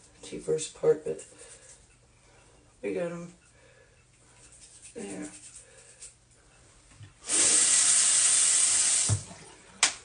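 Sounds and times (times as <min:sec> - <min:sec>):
water running from sink tap: 0:07.2 - 0:09.3.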